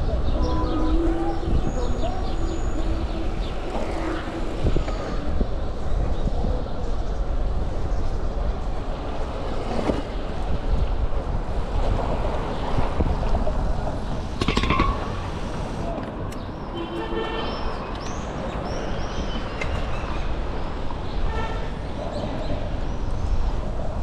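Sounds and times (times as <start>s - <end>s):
city street noise: 0.0s - 24.0s
wind buffeting microphone: 0.0s - 24.0s.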